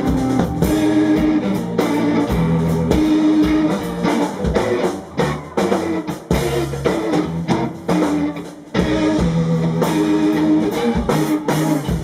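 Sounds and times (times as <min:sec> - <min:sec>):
live instrumental rock band: 0:00.0 - 0:12.0.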